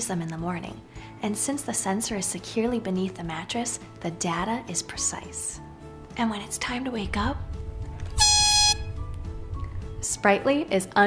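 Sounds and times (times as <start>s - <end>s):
background music with bass: 5.6s - 10.5s
megaphone horn blast: 8.2s - 9.0s.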